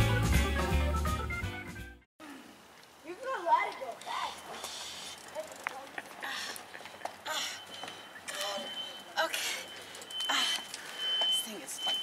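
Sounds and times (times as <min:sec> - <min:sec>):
woman talking: 0:11.3 - 0:12.0.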